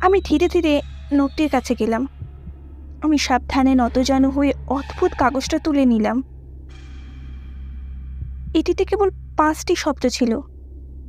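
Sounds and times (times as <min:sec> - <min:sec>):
heartbeat thumps: 0:00.0 - 0:09.6
steady low drone: 0:00.0 - 0:11.0
person speaking: 0:03.0 - 0:06.2, 0:08.5 - 0:10.4.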